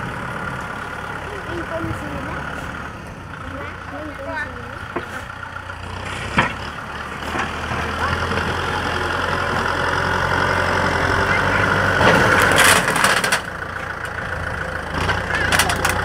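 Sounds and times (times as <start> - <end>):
tractor diesel engine under load: 0.0 - 16.0.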